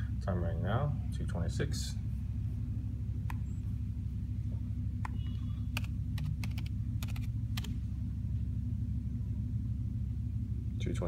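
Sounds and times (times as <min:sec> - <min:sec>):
steady low hum: 0:00.0 - 0:11.0
laptop keyboard typing: 0:05.0 - 0:07.7.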